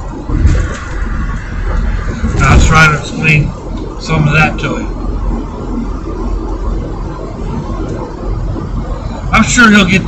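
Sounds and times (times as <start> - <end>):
vehicle cabin road and engine rumble: 0.0 - 10.0.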